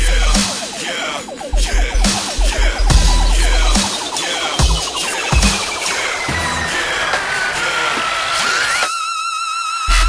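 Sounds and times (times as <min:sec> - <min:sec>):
synth tone gliding: 0:00.0 - 0:08.8
wash of noise: 0:00.2 - 0:08.8.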